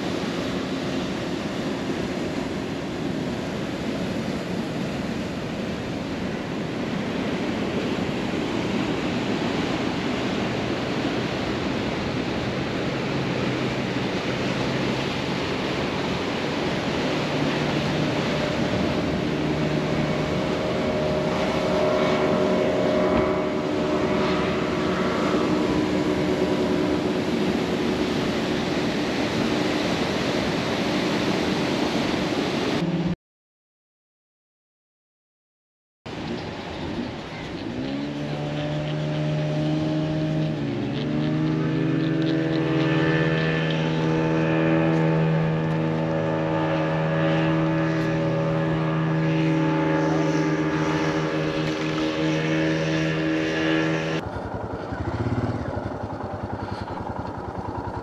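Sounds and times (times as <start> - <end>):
engine humming: 0.0 - 30.5, 36.2 - 58.0
sea surf on rocks: 0.0 - 33.2, 36.1 - 58.0.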